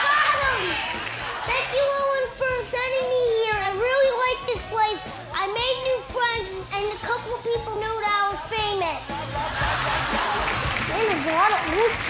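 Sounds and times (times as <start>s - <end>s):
young child talking: 0.0s - 0.8s, 1.4s - 9.2s.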